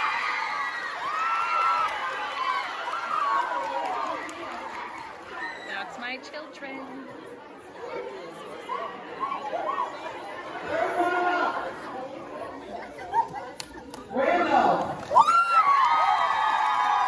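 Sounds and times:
audience chatter: 0.0 - 15.8.

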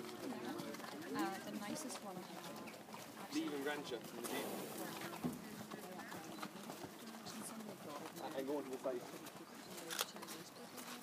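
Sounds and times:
horse hoofbeats on sand: 0.0 - 11.0
low conversation: 0.0 - 11.0.

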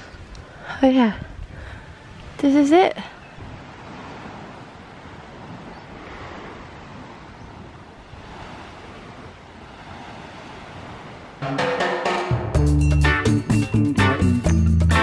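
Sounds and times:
sea waves washing onto beach: 0.0 - 12.2
background music with a beat: 11.4 - 15.0.

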